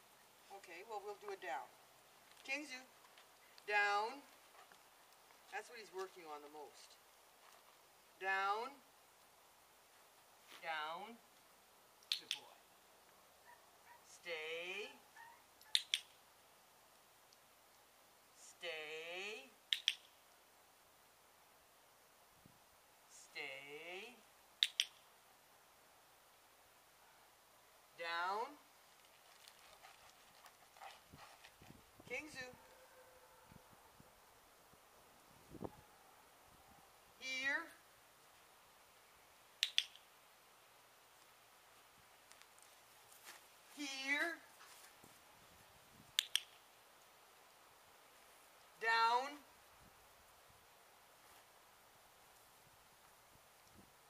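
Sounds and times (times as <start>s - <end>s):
dog-training clicker clicking: 15.7s - 16.1s, 46.2s - 46.5s
person saying a drawn-out word: 43.8s - 44.5s, 48.8s - 49.4s.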